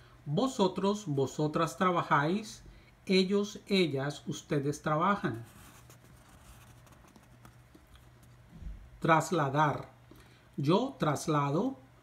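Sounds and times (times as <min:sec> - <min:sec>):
low steady hum: 0:00.0 - 0:12.0
soft low thump: 0:08.5 - 0:09.0.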